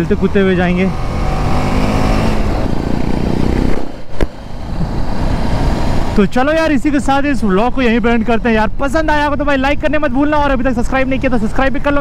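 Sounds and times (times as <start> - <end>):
motorcycle engine accelerating: 0.0 - 6.4
wind and road noise: 0.0 - 12.0.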